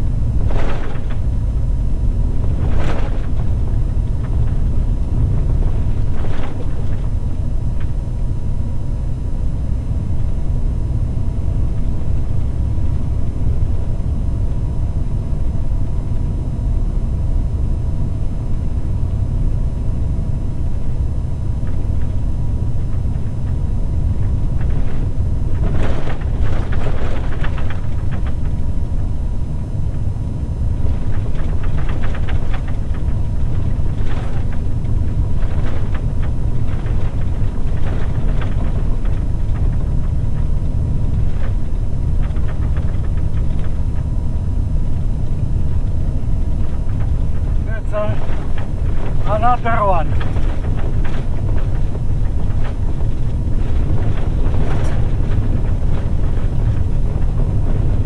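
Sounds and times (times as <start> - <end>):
gravel crackling and rattling: 0.0 - 16.7, 17.6 - 58.0
truck engine and tyres rumbling: 0.0 - 16.7, 17.7 - 58.0.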